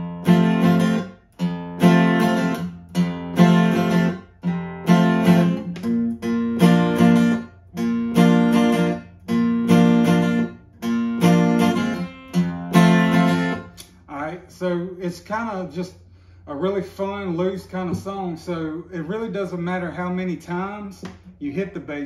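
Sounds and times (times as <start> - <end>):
acoustic guitar strumming: 0.0 - 13.8.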